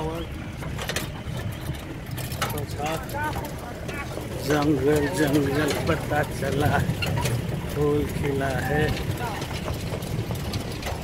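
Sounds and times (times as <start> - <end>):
people's voices: 0.0 - 11.0
vehicle engine running: 0.0 - 11.0.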